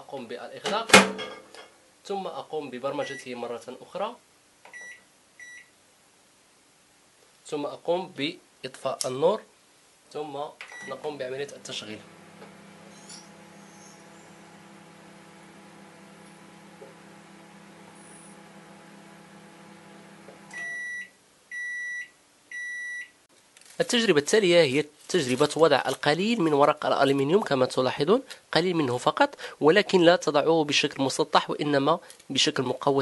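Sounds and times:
high-pitched microwave beeps: 10.7s - 11.0s, 20.5s - 23.1s
microwave oven humming: 10.8s - 21.1s.

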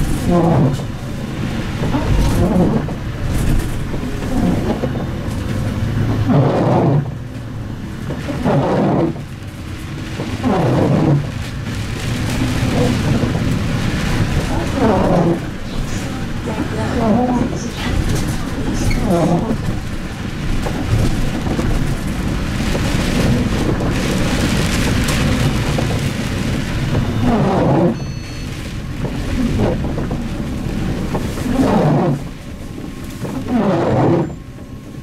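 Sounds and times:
bus engine: 0.0s - 35.0s
tyre noise on wet road: 0.0s - 35.0s.

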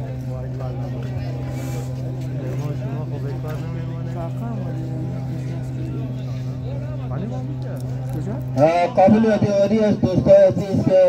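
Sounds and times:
low engine-like hum: 0.0s - 11.0s
men talking: 0.0s - 11.0s.

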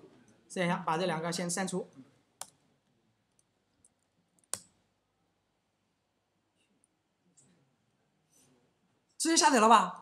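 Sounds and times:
computer mouse clicks: 3.3s - 4.8s.

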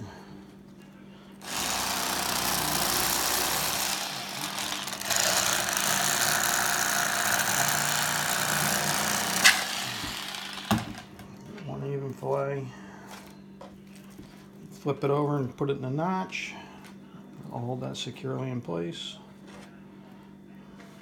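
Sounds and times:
electric knife motor buzzing: 1.4s - 11.1s.

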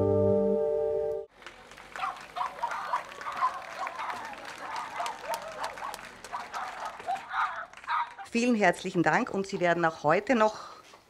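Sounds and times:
ambient music chord: 0.0s - 1.3s
audience applauding: 1.3s - 8.9s
murmur of voices: 1.9s - 8.4s.

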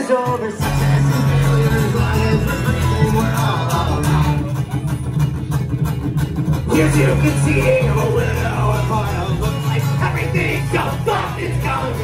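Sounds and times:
person singing: 0.0s - 4.8s, 6.7s - 12.0s
acoustic guitar strummed: 0.0s - 12.0s
upright bass: 0.6s - 12.0s.

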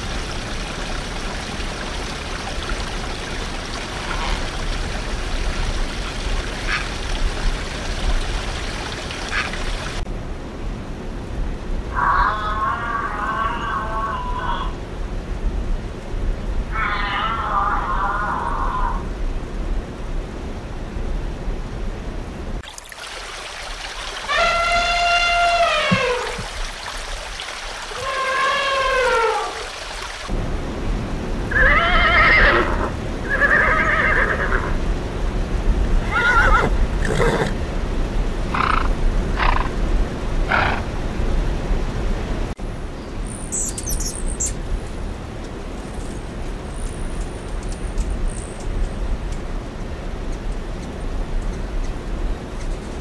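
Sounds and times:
elephants trumpeting: 24.3s - 26.4s, 27.9s - 29.7s, 38.5s - 41.2s
horse neighing and whinnying: 31.5s - 34.7s, 36.0s - 37.6s
hummingbird high chirps: 43.3s - 44.6s.

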